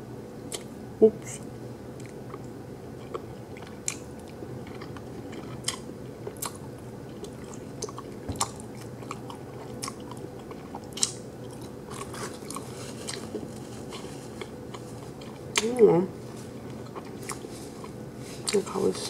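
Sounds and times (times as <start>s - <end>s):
person chewing food: 2.0s - 15.7s, 16.4s - 18.6s.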